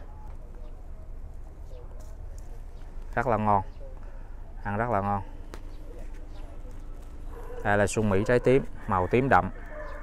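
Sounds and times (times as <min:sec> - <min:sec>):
leaves and fruit ticking: 0:00.0 - 0:04.1, 0:05.2 - 0:10.0.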